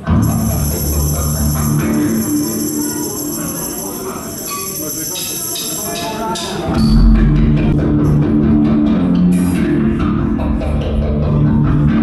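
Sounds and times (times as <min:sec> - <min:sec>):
hissy amplifier drone: 0:00.0 - 0:02.7
low notes: 0:00.0 - 0:04.4, 0:06.6 - 0:12.0
guitar notes: 0:00.0 - 0:04.5, 0:06.7 - 0:12.0.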